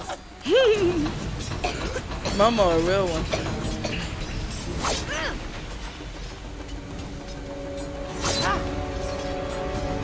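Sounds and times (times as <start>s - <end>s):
sustained music notes: 0.0s - 10.0s
cough-like vocal sound: 1.6s - 2.4s.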